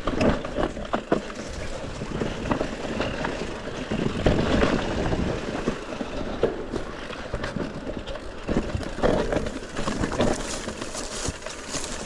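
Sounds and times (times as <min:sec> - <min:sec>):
bike rattling and knocking: 0:00.0 - 0:12.0
tyres rolling over dirt and stones: 0:00.0 - 0:12.0.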